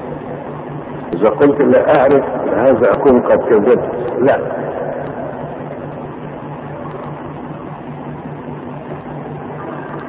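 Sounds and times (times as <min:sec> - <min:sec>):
pulsing low hum: 0:00.0 - 0:10.0
steady background hiss: 0:00.0 - 0:10.0.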